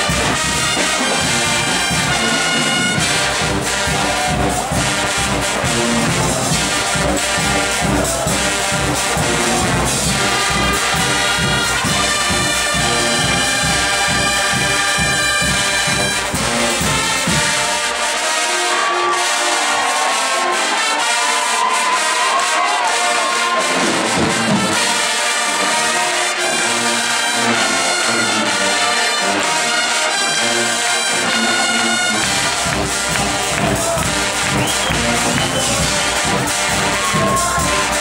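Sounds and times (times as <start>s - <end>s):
brass band playing: 0.0s - 38.0s
drums: 0.0s - 38.0s.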